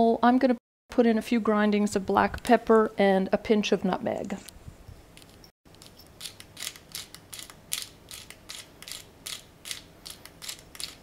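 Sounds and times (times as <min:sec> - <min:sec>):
pepper mill grinding: 0:05.7 - 0:11.0.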